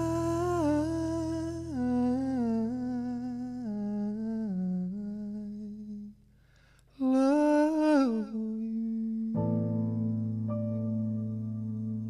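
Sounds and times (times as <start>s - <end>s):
low keyboard chord: 0.0s - 3.1s, 9.3s - 12.0s
man singing wordless notes: 0.0s - 6.2s, 7.0s - 10.6s.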